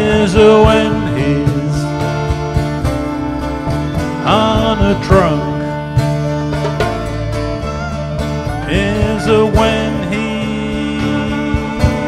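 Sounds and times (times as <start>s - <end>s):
lap steel guitar sliding notes: 0.0s - 12.0s
upright bass line: 0.0s - 12.0s.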